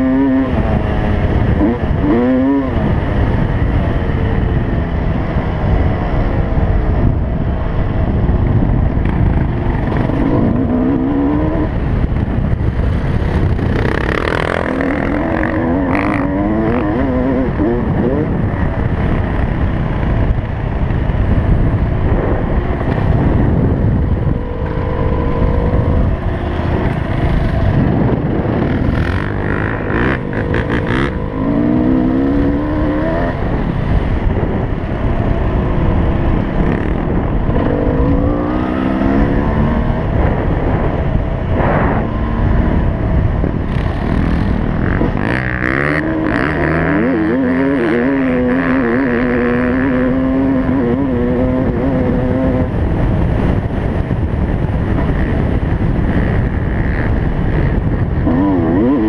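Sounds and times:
dirt bike engine revving: 0:00.0 - 0:03.8, 0:09.0 - 0:19.8, 0:21.9 - 0:53.9, 0:55.0 - 0:59.0
wind buffeting microphone: 0:00.0 - 0:59.0.

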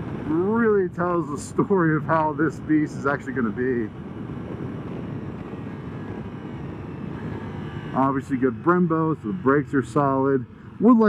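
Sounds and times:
motorcycle engine rumble: 0:00.0 - 0:11.0
wind and road noise: 0:00.0 - 0:11.0.

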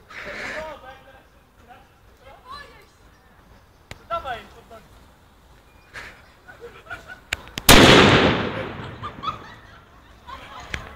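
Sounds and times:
faint clicks: 0:07.3 - 0:07.7
firecracker bang: 0:07.6 - 0:09.8.

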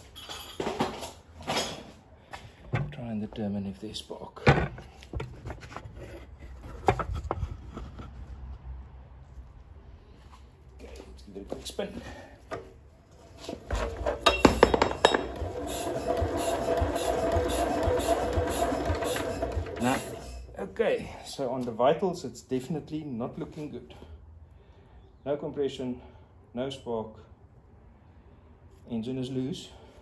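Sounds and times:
metallic clinks and knocks: 0:00.0 - 0:01.2, 0:14.2 - 0:15.4
engine turning over whirring: 0:13.6 - 0:20.6.

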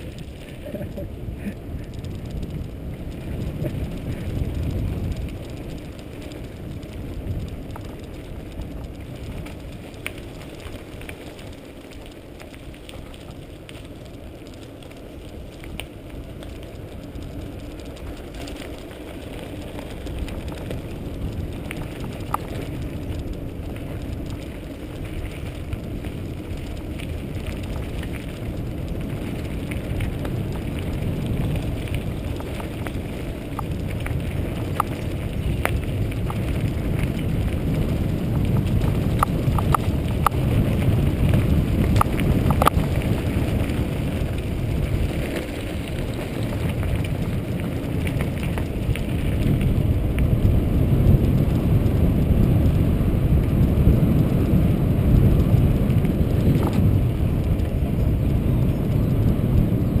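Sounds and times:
bike rattling: 0:00.0 - 1:00.0
tyres rolling over gravel: 0:00.0 - 1:00.0
wind rumbling on microphone: 0:00.0 - 1:00.0.

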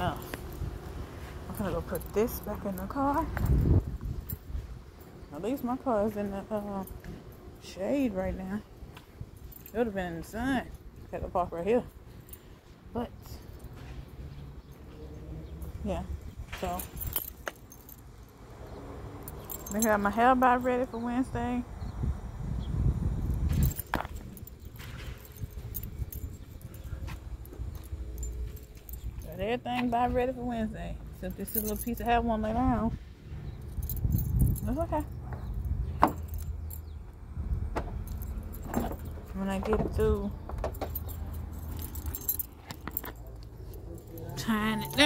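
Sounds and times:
faint clicks and clinks: 0:38.0 - 0:45.0.

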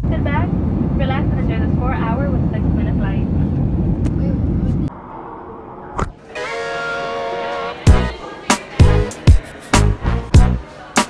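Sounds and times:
airliner cabin rumble: 0:00.0 - 0:06.2.

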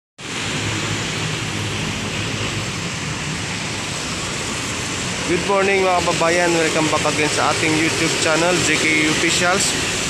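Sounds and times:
street traffic roar: 0:00.2 - 0:10.0.

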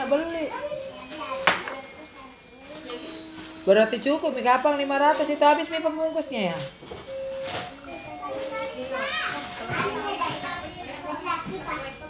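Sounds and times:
children chattering and calling: 0:00.0 - 0:06.4, 0:07.0 - 0:12.0.

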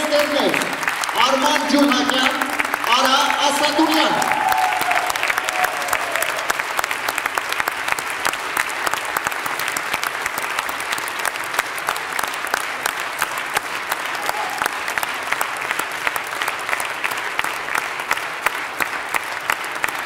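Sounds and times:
audience applauding: 0:00.0 - 0:20.0.

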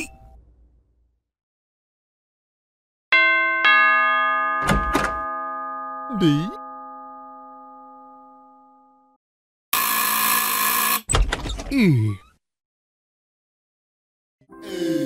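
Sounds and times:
doorbell ding-dong chime: 0:03.1 - 0:09.2.

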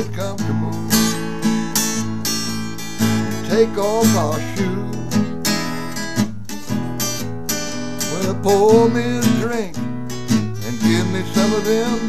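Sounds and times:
acoustic guitar strumming blues: 0:00.0 - 0:12.0.

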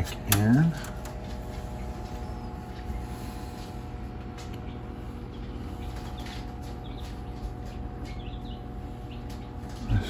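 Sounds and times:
low hum and rumble: 0:00.0 - 0:10.0.

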